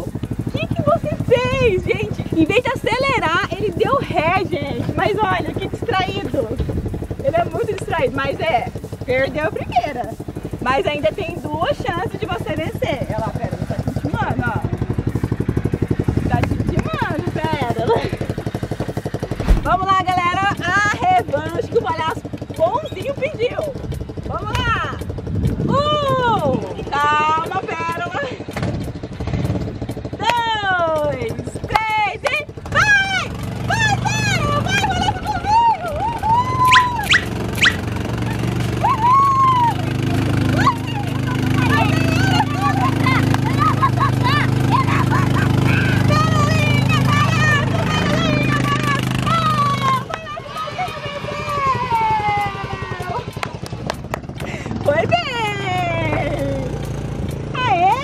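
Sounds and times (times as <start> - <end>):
low engine-like hum: 0.0 - 58.0
high voices whooping and squealing: 32.7 - 53.4.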